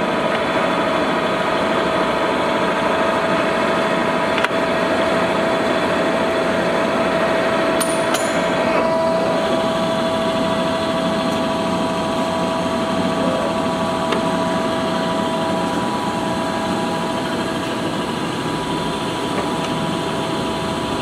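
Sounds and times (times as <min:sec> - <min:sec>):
lathe running with whine: 0:00.0 - 0:21.0.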